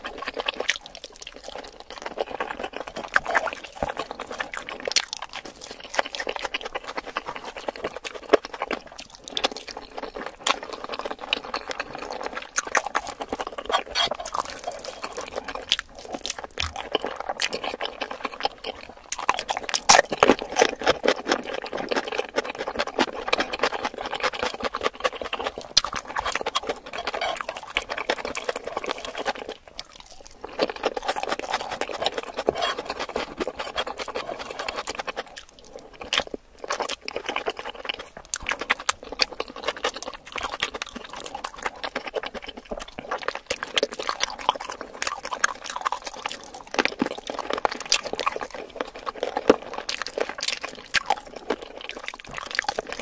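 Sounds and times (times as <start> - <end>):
wet chewing: 0.0 - 53.0.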